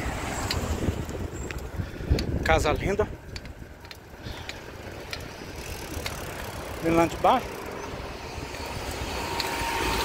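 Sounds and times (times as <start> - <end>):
bicycle road and wind noise: 0.0 - 10.0
bike clicks and rattles: 0.3 - 10.0.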